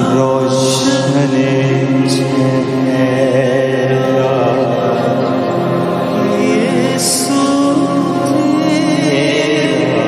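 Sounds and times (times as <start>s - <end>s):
musical accompaniment: 0.0s - 10.0s
person singing chant-like: 0.0s - 10.0s.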